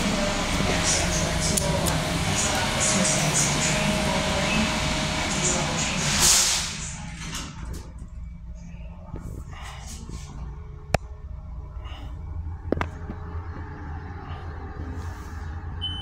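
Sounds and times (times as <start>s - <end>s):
elevator doors shutting: 0.0s - 8.4s, 15.7s - 16.0s
underground platform hiss and rumble: 0.0s - 15.9s.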